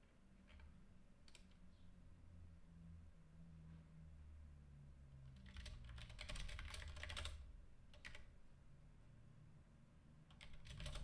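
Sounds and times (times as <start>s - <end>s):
keyboard typing: 5.4s - 8.3s, 10.3s - 11.0s.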